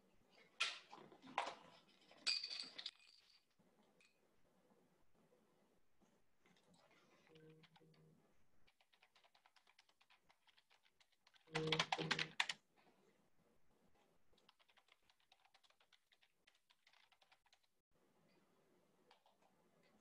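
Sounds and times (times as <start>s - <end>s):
computer keyboard typing: 8.6s - 12.6s, 14.4s - 17.7s.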